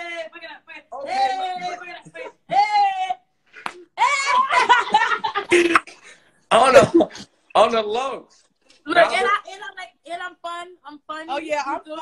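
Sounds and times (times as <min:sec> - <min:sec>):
people laughing: 0:04.0 - 0:06.0.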